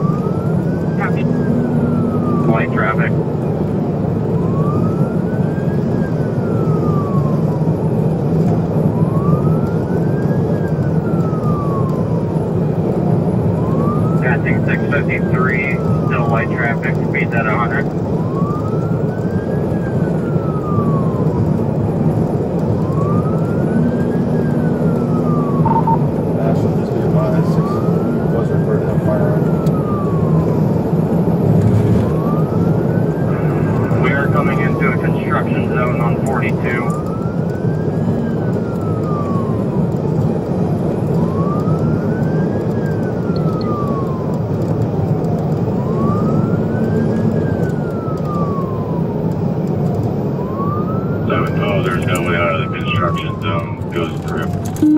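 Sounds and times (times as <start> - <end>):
engine and road noise: 0.0 - 54.9
police siren wailing: 0.0 - 54.9.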